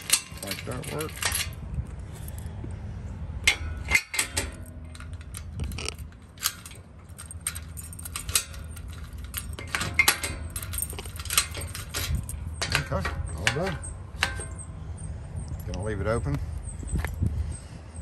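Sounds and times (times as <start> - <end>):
sharp metal lock clicks: 0.0 - 1.6, 3.4 - 14.7
keys jangling on a key ring: 0.0 - 2.5, 4.6 - 14.8
steady low rumble: 0.0 - 18.0.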